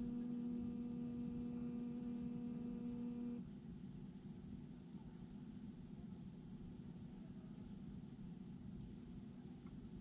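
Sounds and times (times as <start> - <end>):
steady humming tone: 0.0 - 3.7
faint low rumble: 0.0 - 10.0.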